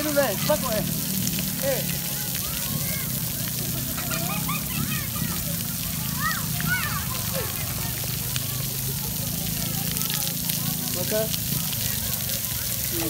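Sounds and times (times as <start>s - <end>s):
fountain water jets splashing: 0.0s - 13.0s
voices calling out: 0.0s - 13.0s.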